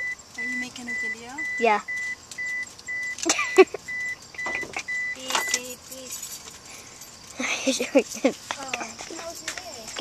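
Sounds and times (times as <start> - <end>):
car warning chime beeping: 0.0 - 5.9.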